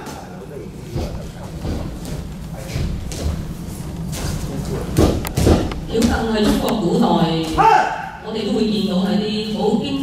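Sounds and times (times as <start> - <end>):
thuds on padded mat: 5.0 - 6.8.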